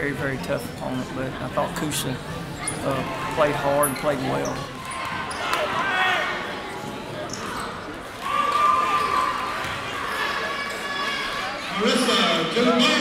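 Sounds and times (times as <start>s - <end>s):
voices of players and crowd: 0.0s - 13.0s.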